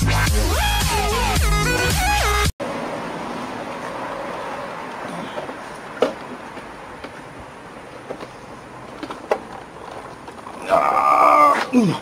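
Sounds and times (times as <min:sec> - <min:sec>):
street background noise: 0:00.6 - 0:12.0.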